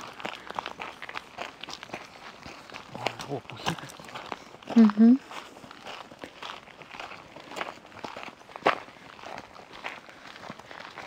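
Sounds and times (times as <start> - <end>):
footsteps on forest trail: 0.0 - 11.0.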